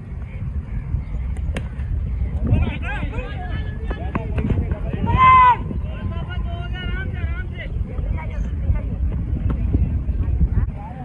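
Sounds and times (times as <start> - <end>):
distant voices calling: 0.0 - 10.6
wind buffeting microphone: 0.0 - 11.0.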